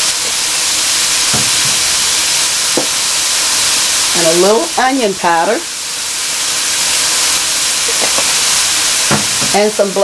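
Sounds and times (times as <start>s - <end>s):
food sizzling in a skillet: 0.0s - 10.0s.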